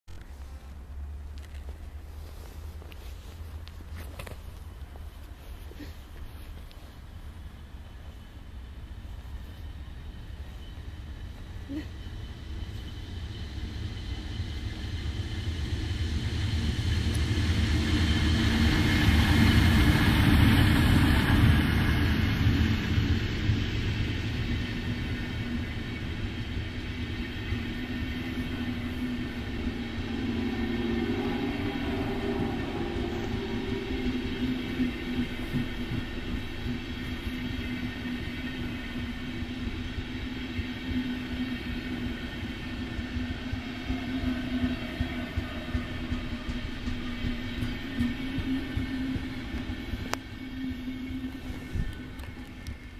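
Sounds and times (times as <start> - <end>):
electric locomotive passing: 0.1 - 52.9
wheels rumbling on rail: 0.1 - 52.9.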